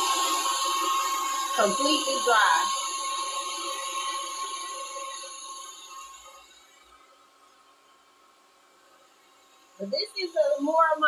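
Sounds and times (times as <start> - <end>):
hair dryer blowing with whine: 0.0 - 7.1.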